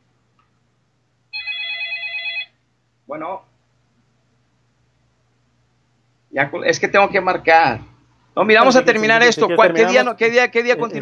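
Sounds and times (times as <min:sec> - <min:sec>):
electronic telephone ring: 0:01.3 - 0:02.6.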